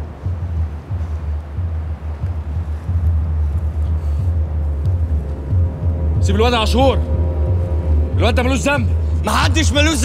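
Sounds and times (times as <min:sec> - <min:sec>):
low rumbling drone: 0:00.0 - 0:10.0.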